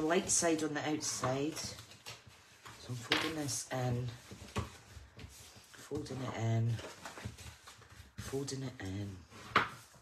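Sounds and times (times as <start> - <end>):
paper crinkling and tapping: 0.0 - 10.0.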